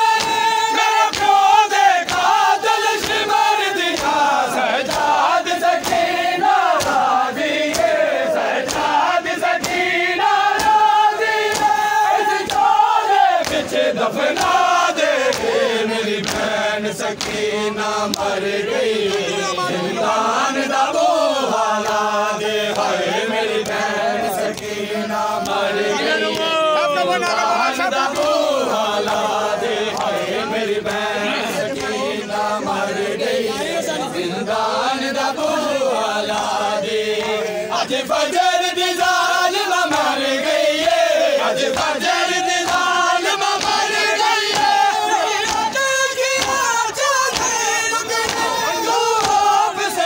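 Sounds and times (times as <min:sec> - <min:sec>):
men chanting a lament: 0:00.0 - 0:50.0.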